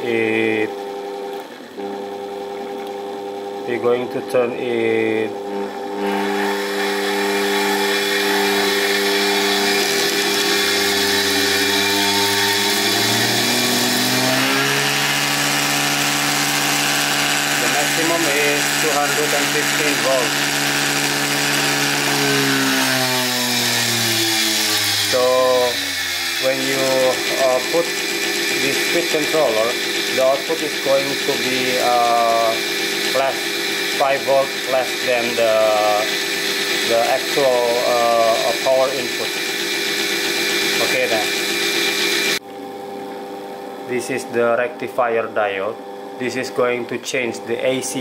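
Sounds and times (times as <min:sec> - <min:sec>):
electric motor humming: 0:00.0 - 0:48.0.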